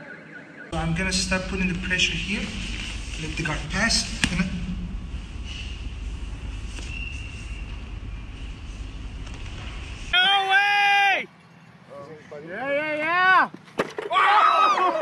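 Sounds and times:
low steady rumble: 0.8 - 10.2
sharp knock: 4.1 - 4.8
spectators shouting and cheering: 10.1 - 11.3, 14.1 - 15.0.

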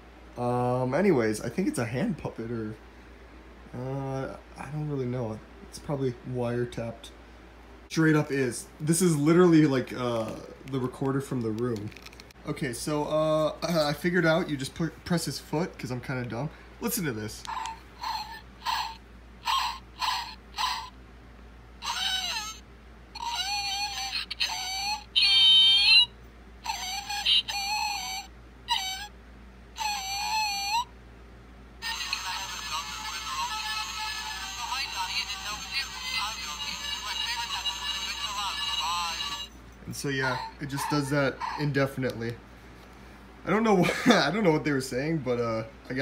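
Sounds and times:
recorded voice lines: 0.3 - 2.8, 3.7 - 7.2, 7.9 - 18.3, 31.8 - 42.4
toy speaker music: 17.5 - 20.9, 21.8 - 22.6, 23.2 - 29.1, 29.8 - 30.9, 31.8 - 39.5
toy speaker yaps: 17.5 - 21.0, 21.8 - 22.6, 23.2 - 29.2, 29.8 - 30.9, 31.8 - 39.5, 40.3 - 41.6.

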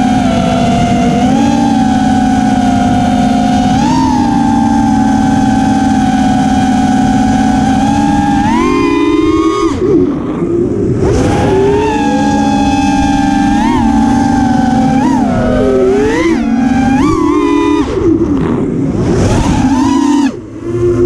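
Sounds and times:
quadcopter motors whining: 0.0 - 21.0.

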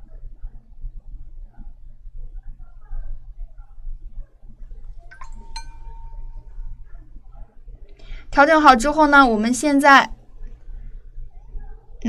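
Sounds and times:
brush clinking porcelain dish: 5.1 - 6.7.

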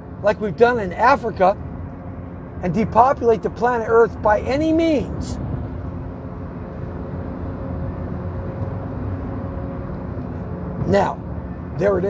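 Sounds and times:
car rumble from inside cabin: 0.0 - 12.0.

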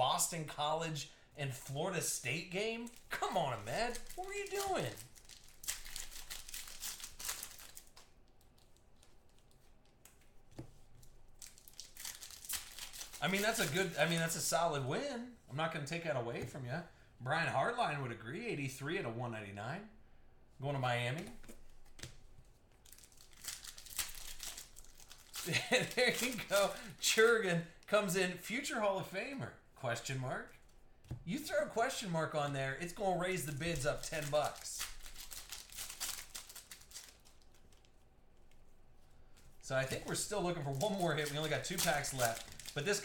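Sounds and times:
foil wrapper crinkling: 2.7 - 9.5, 11.3 - 14.6, 22.8 - 26.9, 32.9 - 38.0, 39.8 - 43.0.

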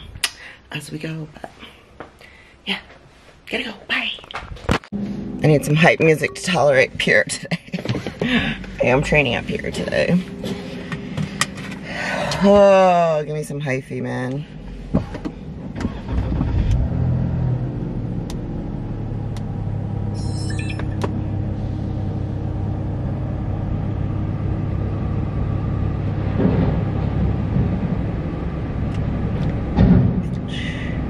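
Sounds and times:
car engine hum inside cabin: 4.9 - 31.0.

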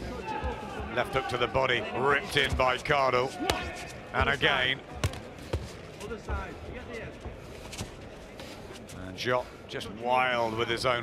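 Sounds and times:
arena crowd murmur: 0.0 - 11.0
footwork on ring canvas: 2.2 - 9.3.

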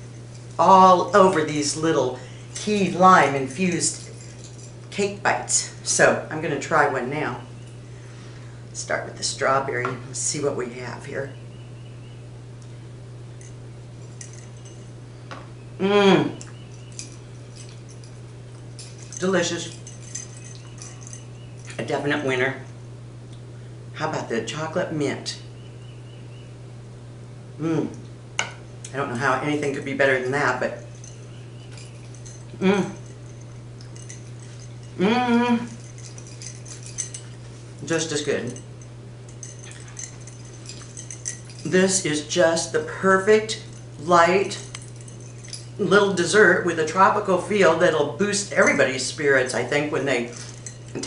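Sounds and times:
steady low hum: 0.0 - 51.0
utensil clinking on platter: 16.4 - 22.3, 28.4 - 35.0, 35.7 - 46.0, 49.6 - 51.0.

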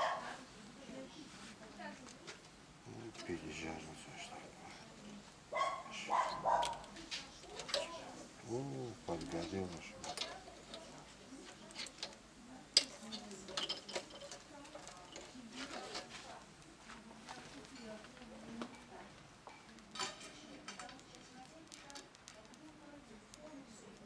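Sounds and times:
metal skewers clinking: 6.0 - 8.3, 8.9 - 16.5, 19.8 - 22.4.

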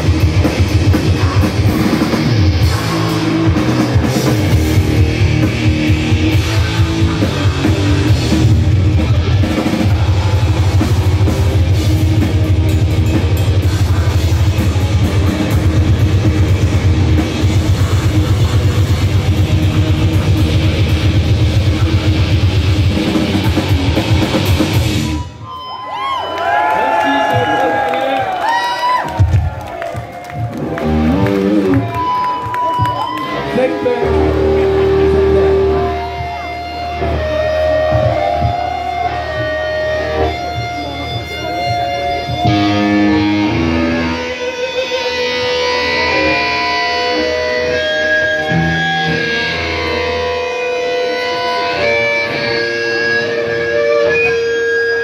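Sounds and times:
grindcore band playing: 0.0 - 25.4, 28.5 - 55.0
electric guitar notes and bends: 0.0 - 26.0, 29.0 - 55.0.

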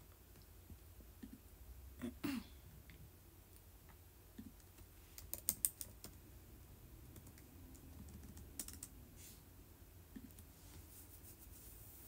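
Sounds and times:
faint low hum: 0.0 - 12.0
typing clicks: 7.1 - 8.9.

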